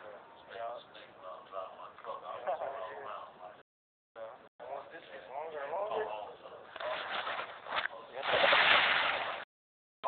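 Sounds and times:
men's voices talking: 0.0 - 3.6, 4.2 - 7.1.

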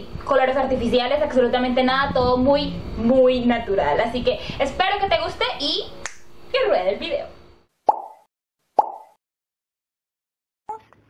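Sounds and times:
cartoon pop sound effects: 7.9 - 9.2.

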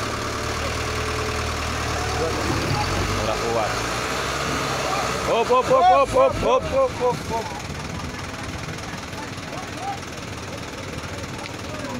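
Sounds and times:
diesel engine running: 0.0 - 11.9.

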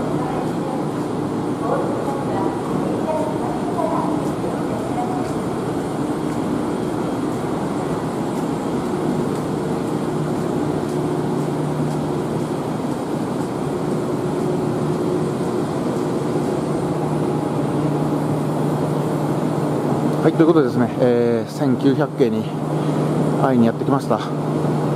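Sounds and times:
low steady hum: 0.0 - 24.9
tram machinery hum: 0.0 - 24.9.

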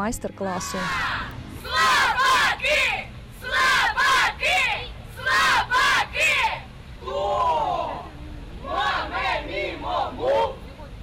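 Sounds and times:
young voices shouting: 0.5 - 10.8.

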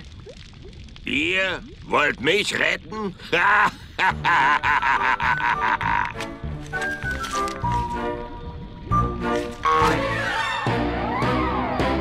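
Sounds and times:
cartoon character cackling laughter: 3.4 - 6.2.

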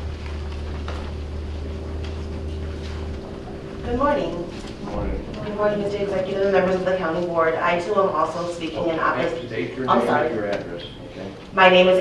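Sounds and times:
low steady rumble: 0.0 - 12.0
woman speaking: 3.8 - 4.6, 5.4 - 10.3, 11.6 - 12.0.

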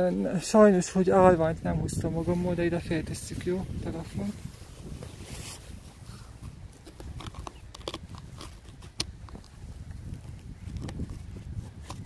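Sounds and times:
snow crunching: 3.3 - 7.2.

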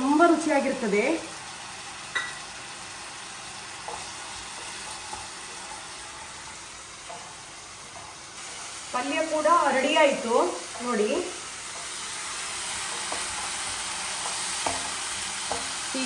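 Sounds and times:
food sizzling in oil: 0.0 - 16.0
spatula knock: 14.2 - 15.8.

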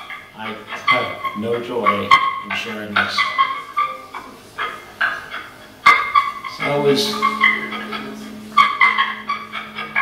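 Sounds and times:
effects-processed stuttering tones: 6.6 - 10.0
steady low drone: 6.6 - 10.0.

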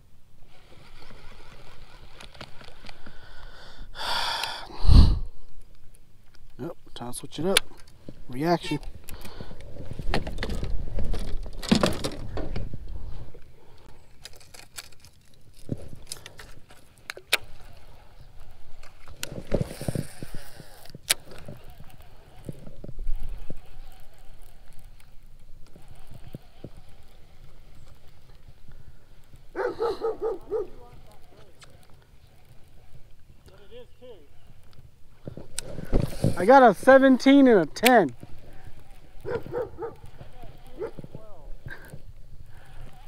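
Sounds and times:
handling rumble: 7.6 - 43.0.

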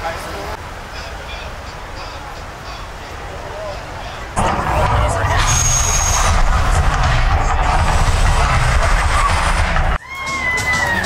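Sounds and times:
crowd chatter: 0.0 - 11.0
deep rumbling roar of flames: 4.4 - 10.0.

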